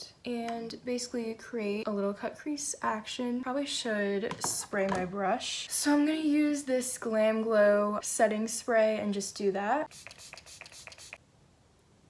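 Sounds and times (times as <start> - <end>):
spray bottle hissing sprays: 9.9 - 11.2.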